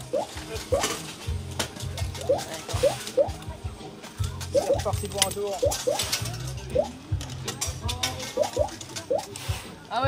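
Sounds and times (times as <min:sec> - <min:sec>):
coin-pusher machines clicking: 0:00.0 - 0:09.4.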